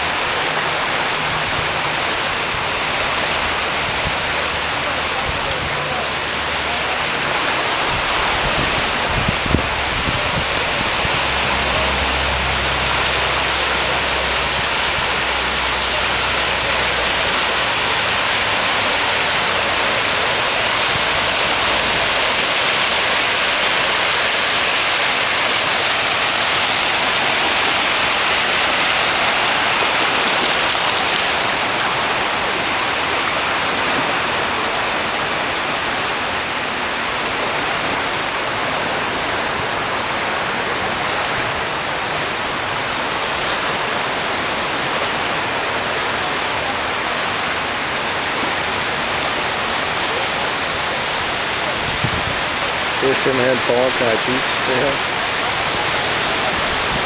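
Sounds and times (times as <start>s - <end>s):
small waves washing over sand: 0.0s - 57.0s.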